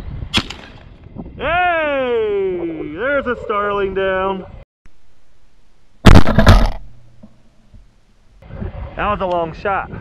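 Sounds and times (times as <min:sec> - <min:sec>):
loud shotgun blast: 0:06.0 - 0:06.9.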